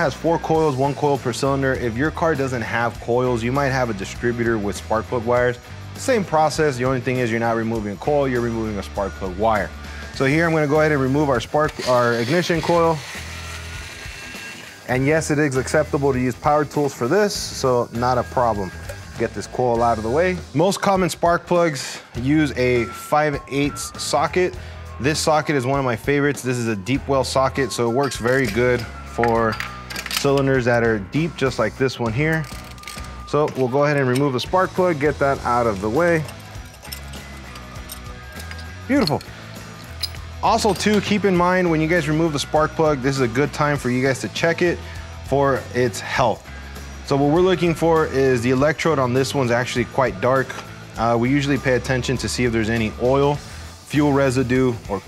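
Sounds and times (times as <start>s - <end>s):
background music: 0.0s - 55.0s
power ratchet whining: 11.6s - 15.0s, 35.6s - 40.3s
socket wrench clicking: 36.2s - 40.9s.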